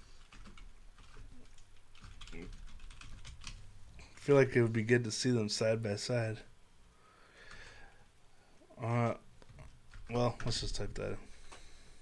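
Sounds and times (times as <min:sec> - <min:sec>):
computer keyboard typing: 0:00.2 - 0:03.7.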